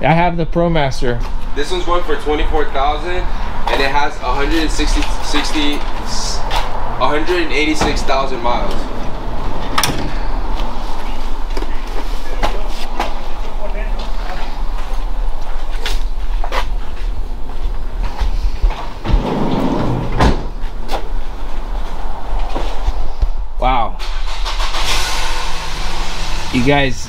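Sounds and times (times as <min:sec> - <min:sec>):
steady low rumble: 0:00.0 - 0:24.0
van sliding door opening: 0:07.7 - 0:10.5, 0:18.8 - 0:21.1.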